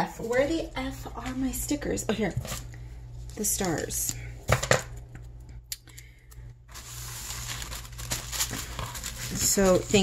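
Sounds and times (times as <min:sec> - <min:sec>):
tissue paper rustling: 0:06.7 - 0:10.0.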